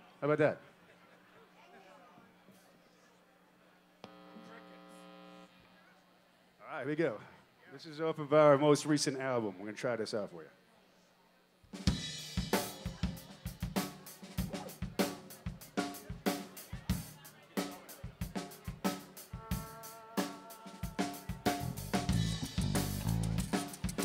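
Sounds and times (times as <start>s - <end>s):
drum kit beat: 11.7s - 24.0s
live rock band: 11.8s - 24.0s
keyboard notes: 19.2s - 24.0s
bass guitar: 21.2s - 24.0s.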